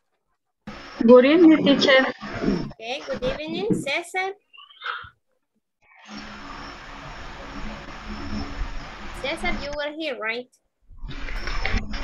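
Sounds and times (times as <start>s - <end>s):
background hiss with low hum: 0.7s - 4.3s, 6.1s - 10.5s
person speaking: 1.0s - 5.1s, 9.2s - 10.6s.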